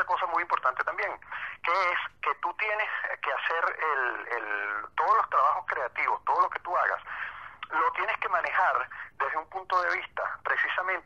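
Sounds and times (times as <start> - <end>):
man talking over phone line: 0.0 - 11.0.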